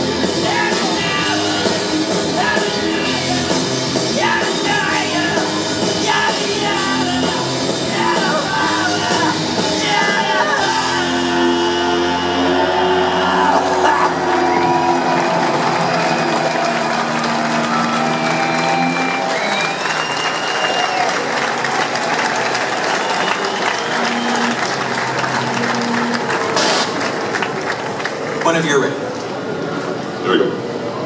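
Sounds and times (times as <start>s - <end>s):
rock band held chord: 0.0s - 20.2s
crowd cheering and applauding: 0.4s - 29.1s
crowd whistles: 12.4s - 27.6s.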